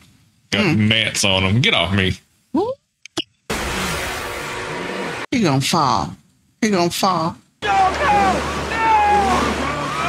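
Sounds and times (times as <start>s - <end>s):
surf: 7.6s - 10.0s.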